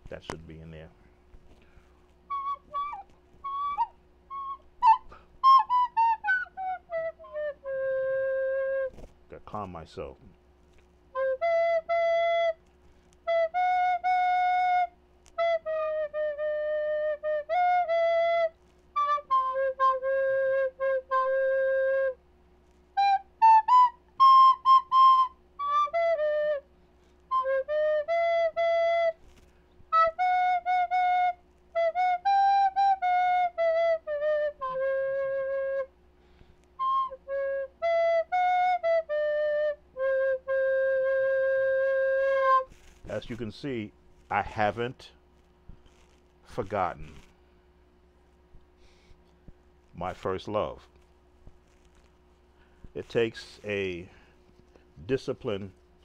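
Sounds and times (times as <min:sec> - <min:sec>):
faint steady hum: 0:00.0 - 0:56.0
flutophone melody: 0:02.3 - 0:09.0, 0:11.1 - 0:12.6, 0:13.2 - 0:22.2, 0:23.0 - 0:26.6, 0:27.3 - 0:29.3, 0:29.9 - 0:35.9, 0:36.8 - 0:43.8.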